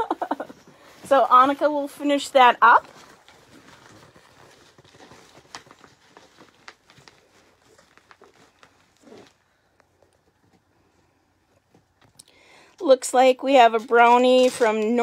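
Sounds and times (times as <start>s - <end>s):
plastic bag crinkling: 0.0s - 10.1s.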